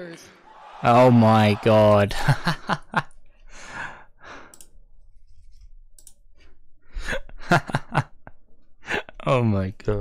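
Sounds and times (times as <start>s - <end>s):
man laughing with breathy puffs: 2.1s - 3.0s.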